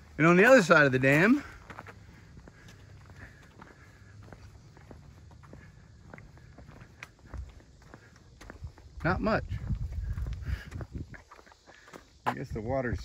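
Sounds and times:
footsteps on paved road: 0:00.0 - 0:13.0
steady low rumble: 0:01.6 - 0:11.2.

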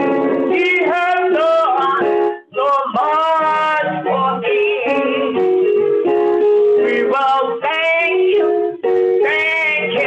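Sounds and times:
person singing gospel song: 0:00.0 - 0:10.0.

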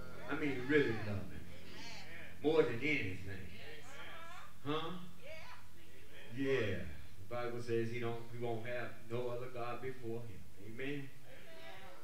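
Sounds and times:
man's wavering voice: 0:00.0 - 0:01.5.

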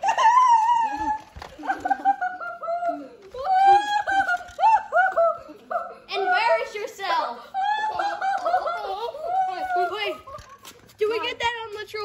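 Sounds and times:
child squealing: 0:03.3 - 0:06.7, 0:08.8 - 0:10.7.

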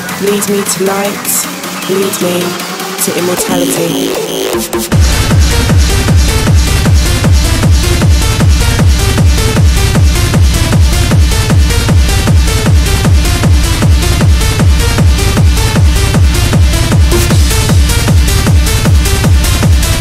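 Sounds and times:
repeating synth figure: 0:02.0 - 0:04.8
four-on-the-floor kick drum: 0:04.9 - 0:20.0.

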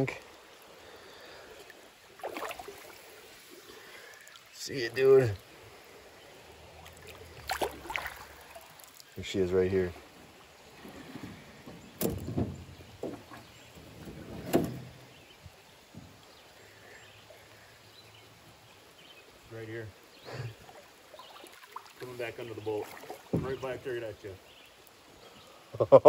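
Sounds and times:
low spoken sounds: 0:04.5 - 0:05.4, 0:09.2 - 0:10.0, 0:22.0 - 0:24.4
knocks on metal canoe hull: 0:11.7 - 0:14.9.

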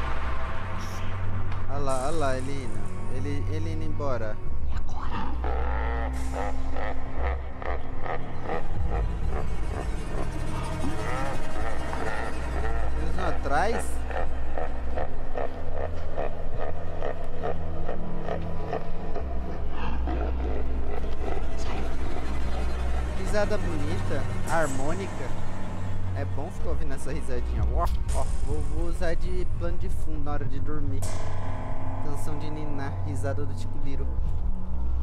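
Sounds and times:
low droning suspense music: 0:00.0 - 0:35.0
monster laughing: 0:01.8 - 0:04.3, 0:05.0 - 0:31.2.

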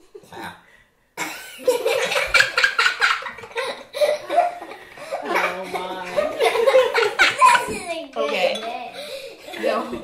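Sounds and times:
people laughing: 0:01.5 - 0:07.8.

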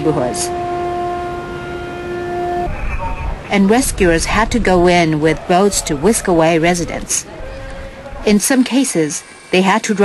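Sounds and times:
held horn tone: 0:00.0 - 0:08.5
low rumble: 0:02.6 - 0:08.4.

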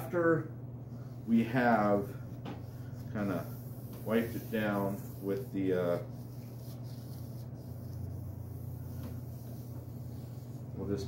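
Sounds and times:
steady low hum: 0:00.0 - 0:11.0
wipe rubbing on steel blade: 0:02.8 - 0:11.0.

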